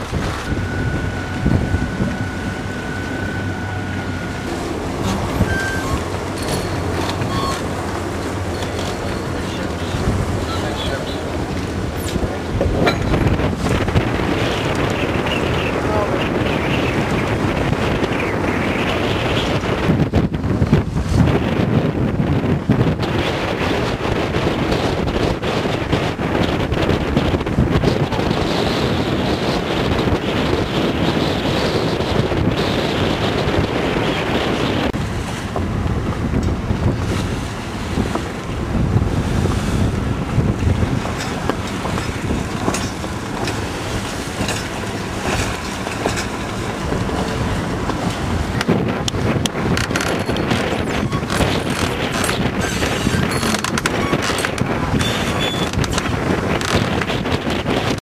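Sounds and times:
waves washing alongside boat: 0.0 - 58.0
wind buffeting microphone: 0.0 - 58.0.

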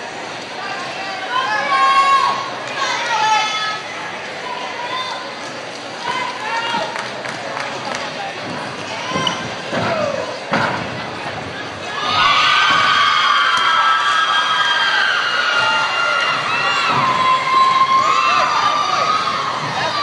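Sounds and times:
arena crowd cheering and shouting: 0.0 - 20.0.

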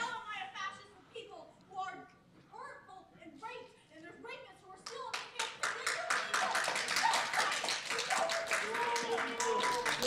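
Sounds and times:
audience applause: 6.1 - 10.0.

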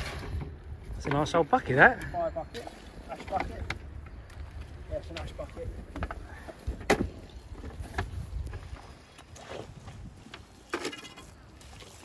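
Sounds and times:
wind rumble on microphone: 0.0 - 10.6.

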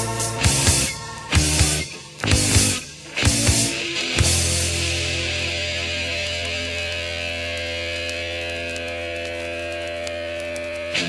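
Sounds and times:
distorted guitar chord and bass: 0.0 - 11.0.

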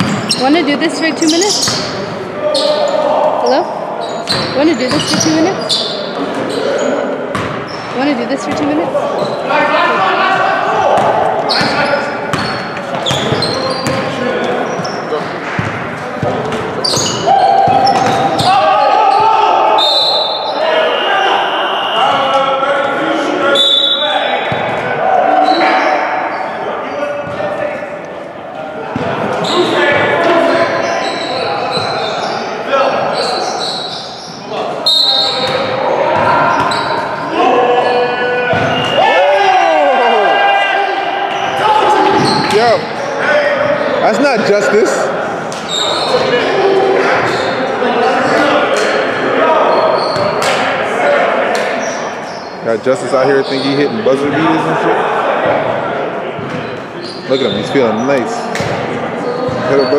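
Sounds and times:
sharp shoe squeaks: 0.0 - 3.0, 4.0 - 7.0, 11.5 - 15.2, 16.8 - 19.2, 30.8 - 32.5, 33.1 - 35.7, 36.4 - 39.2, 45.6 - 46.3, 47.2 - 47.6, 49.7 - 50.5, 51.8 - 54.1, 56.6 - 58.2, 59.2 - 59.9
players' voices: 0.0 - 59.9.

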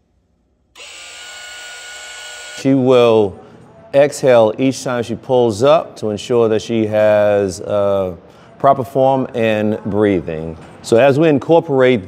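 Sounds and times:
electric motor buzz: 0.8 - 2.8.

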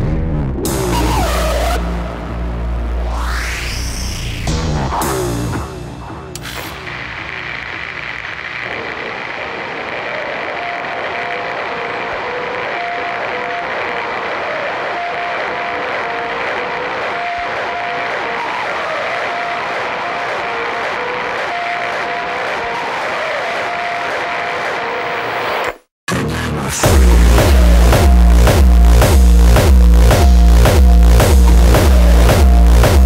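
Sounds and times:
thick steady electronic noise: 0.7 - 25.8, 26.8 - 33.0.

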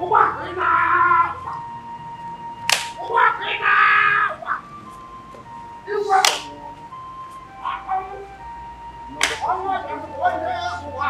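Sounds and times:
man shouting: 0.0 - 1.5, 3.0 - 4.5
background music drone: 0.0 - 11.0
sharp snap: 2.7 - 3.0, 6.2 - 6.6, 9.2 - 9.5.

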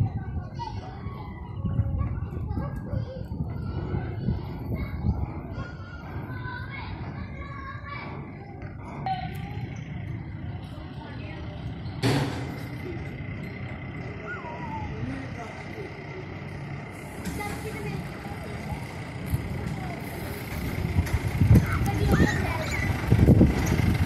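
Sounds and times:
distant voices: 0.0 - 24.0
steady low rumble: 0.0 - 24.0.

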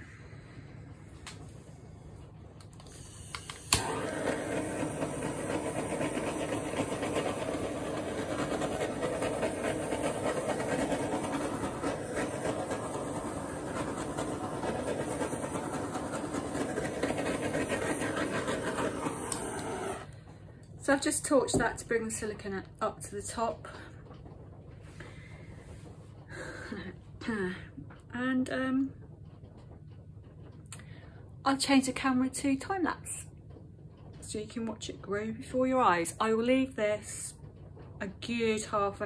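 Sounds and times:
gas torch flame hissing: 0.0 - 20.2
gas torch lighting click: 2.6 - 4.0.

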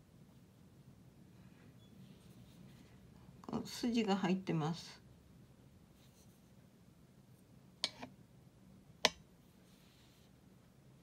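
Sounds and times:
brush swishing across paper: 9.5 - 10.4.

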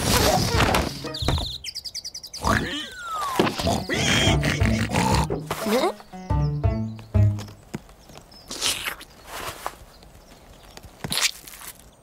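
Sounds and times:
cartoon pigs laughing and snorting: 2.4 - 6.0.

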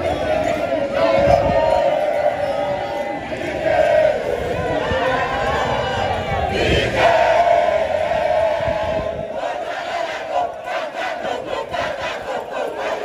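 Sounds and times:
crowd cheering and chanting: 0.0 - 13.0.

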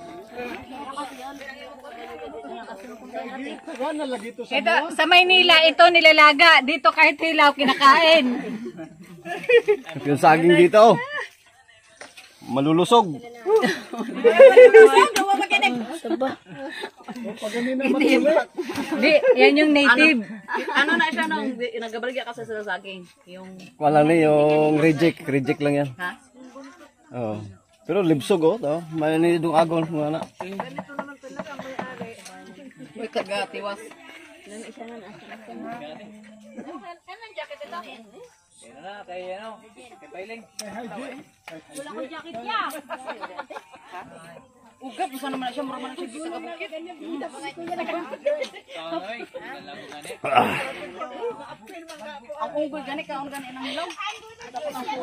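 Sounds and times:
distant overlapping chatter: 0.0 - 55.0.

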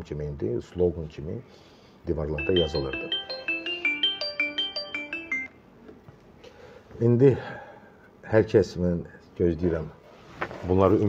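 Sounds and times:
phone ringtone melody: 2.4 - 5.6.

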